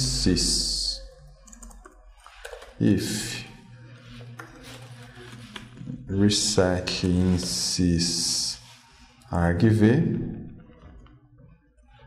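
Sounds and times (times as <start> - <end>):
man speaking: 0.0 - 1.1, 2.8 - 3.8, 5.9 - 10.6.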